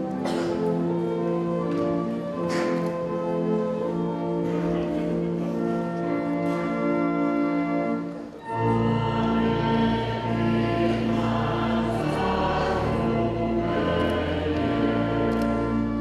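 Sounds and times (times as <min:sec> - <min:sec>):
congregation singing a hymn: 0:08.4 - 0:16.0.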